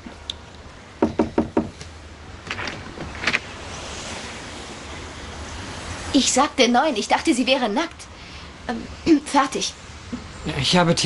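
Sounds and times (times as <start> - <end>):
steady hiss: 0.0 - 11.0
knocks on a door: 1.0 - 1.8
faint clicks and rustles: 1.8 - 3.8.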